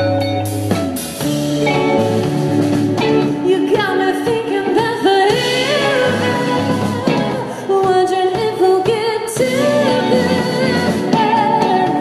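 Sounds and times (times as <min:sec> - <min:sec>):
live synth-pop band: 0:00.0 - 0:12.0
woman singing: 0:03.4 - 0:12.0.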